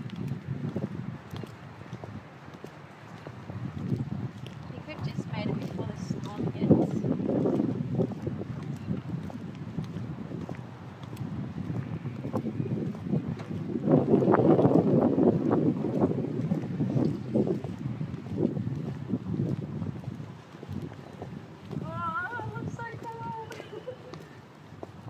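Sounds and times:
boot heels on concrete: 0.0 - 25.0
wind buffeting microphone: 0.0 - 25.0.

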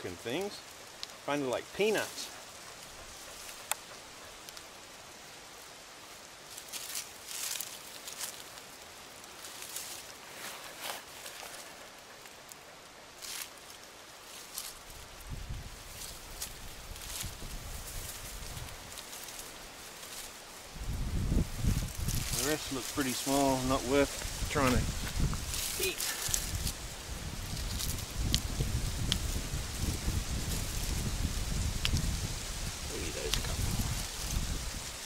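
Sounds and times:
soft crackles and rustles: 0.0 - 35.0
hands scraping through dry soil: 6.5 - 35.0.

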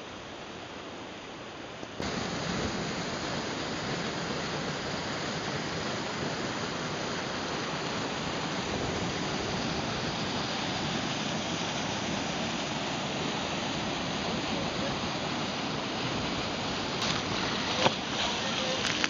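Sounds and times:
river rushing over cascades: 0.0 - 19.0.

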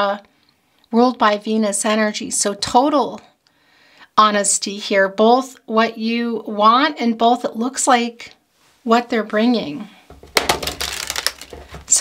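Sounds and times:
cards being riffle-shuffled: 10.1 - 12.0.

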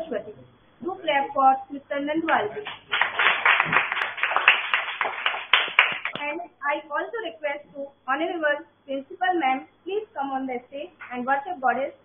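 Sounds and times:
muffled group applause: 2.6 - 6.2.

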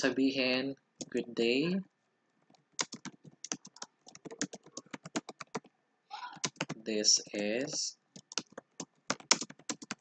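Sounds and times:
computer keyboard typing: 2.4 - 5.7, 6.3 - 10.0.

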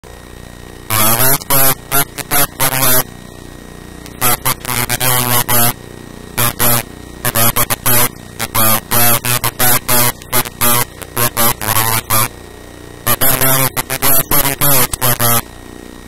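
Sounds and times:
steady background hum: 0.0 - 16.0
man speaking: 0.9 - 3.0, 4.1 - 5.8, 6.4 - 12.3, 13.1 - 15.4.

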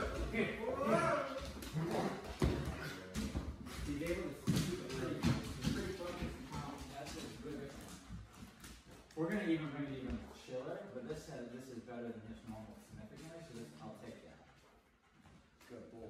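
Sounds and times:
claws and footsteps on hardwood: 0.0 - 10.5, 12.4 - 16.0.

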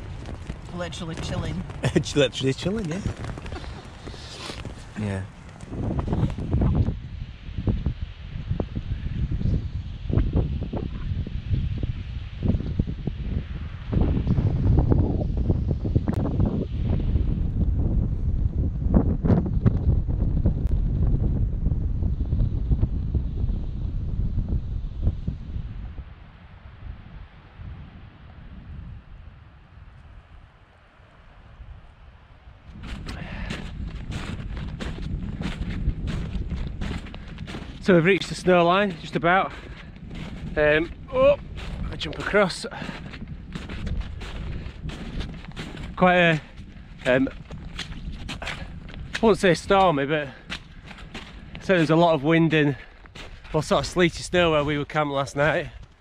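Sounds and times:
footsteps: 0.0 - 6.5, 32.8 - 54.0
wind buffeting microphone: 0.0 - 56.0.

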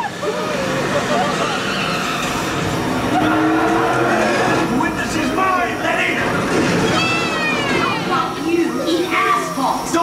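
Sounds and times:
theme park ride sound effects: 0.0 - 10.0.

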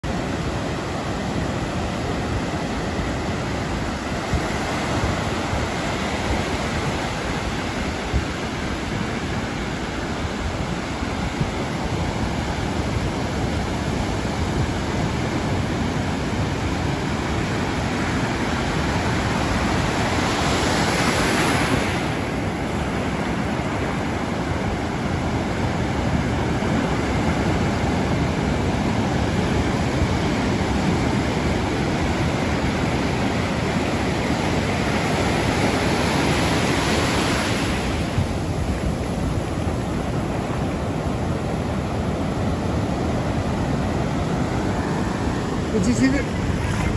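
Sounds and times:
ocean surf breaking on sand: 0.0 - 46.9.

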